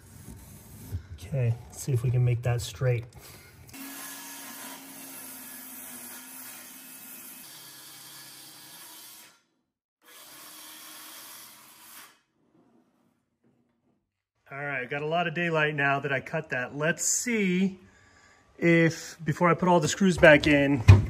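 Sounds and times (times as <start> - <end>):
circular saw cutting wood: 3.7 - 9.4, 10.0 - 12.3.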